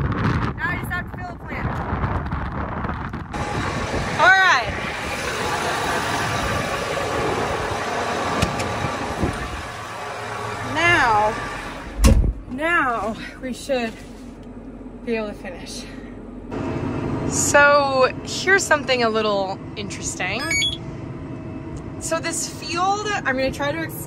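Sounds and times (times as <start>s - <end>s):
tractor engine running: 3.3s - 15.6s, 16.2s - 22.0s
cab door shutting: 20.4s - 20.8s.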